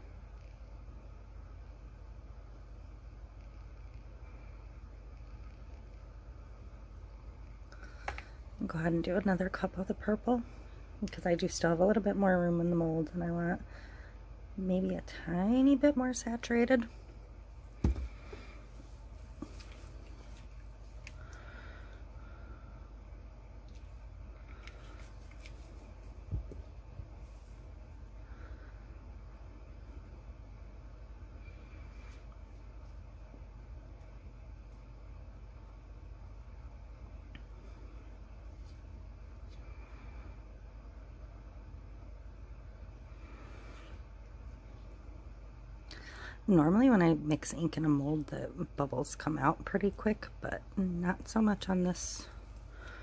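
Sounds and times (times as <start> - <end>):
low hum: 0.0 - 53.0.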